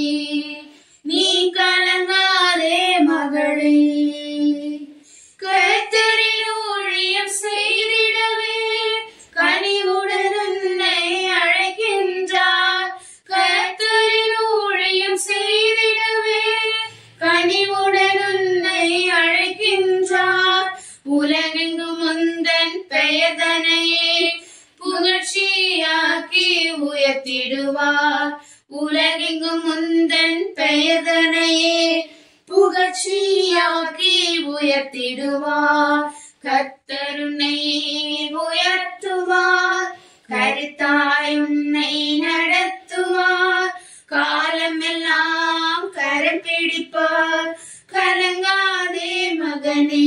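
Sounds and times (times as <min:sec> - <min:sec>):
high voice singing a hymn: 0:00.0 - 0:50.0.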